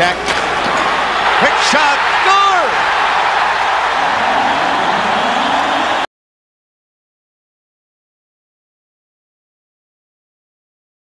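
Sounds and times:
arena crowd cheering: 0.0s - 6.1s.

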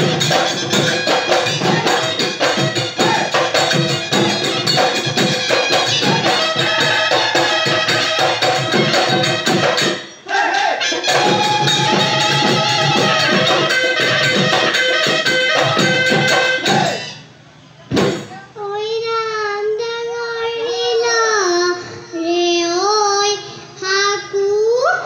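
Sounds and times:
dhol drums beating fast rhythm: 0.0s - 10.2s, 10.9s - 17.1s
person singing alone: 1.4s - 4.9s.

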